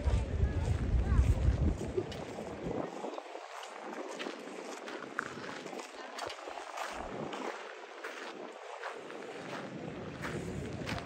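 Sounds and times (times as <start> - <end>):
distant crowd chatter: 0.0 - 11.0
wind buffeting microphone: 0.0 - 11.0.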